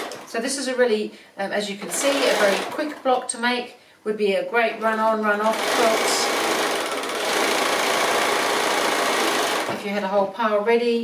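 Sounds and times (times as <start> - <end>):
sewing machine running: 1.9 - 2.8, 5.4 - 9.8.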